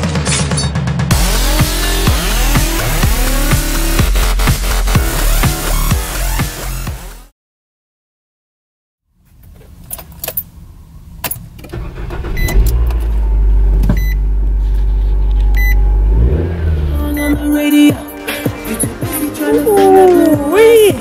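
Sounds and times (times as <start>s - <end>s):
car engine starting and idling: 1.0s - 6.9s, 9.2s - 21.0s
ignition clicks and rattles: 11.2s - 15.7s
short beeps: 14.0s - 14.2s, 15.6s - 15.8s.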